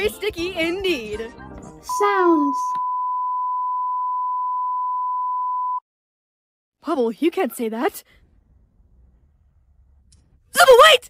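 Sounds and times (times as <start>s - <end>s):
censor bleep tone: 1.9s - 5.8s.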